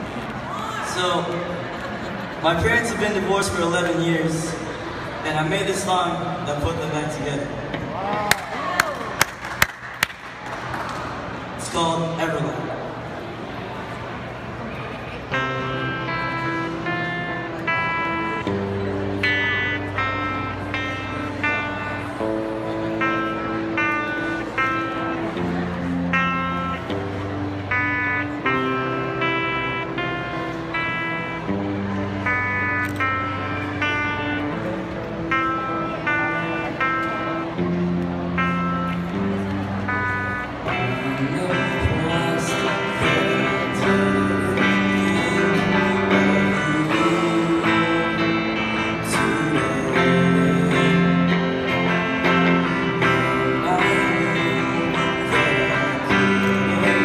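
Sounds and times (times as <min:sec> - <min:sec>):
electric bass notes: 0:00.0 - 0:57.0
electric guitar notes: 0:00.0 - 0:57.0.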